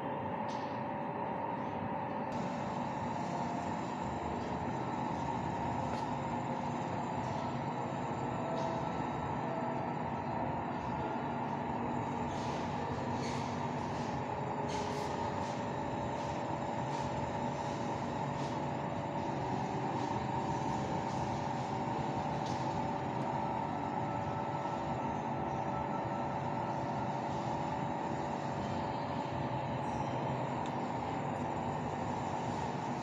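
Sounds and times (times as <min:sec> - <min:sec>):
ventilation hum and hiss: 0:00.0 - 0:33.0.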